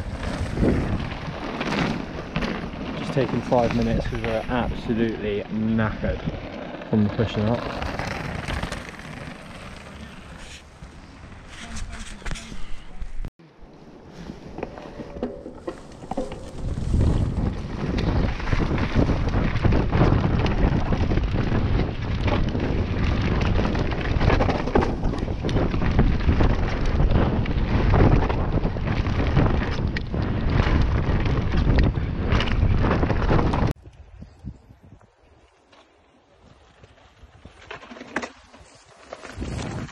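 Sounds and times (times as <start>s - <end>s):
wind buffeting microphone: 0.0s - 7.1s, 15.0s - 35.3s, 38.6s - 39.9s
bike tyres rumbling and rattling: 0.0s - 35.8s, 36.4s - 39.9s.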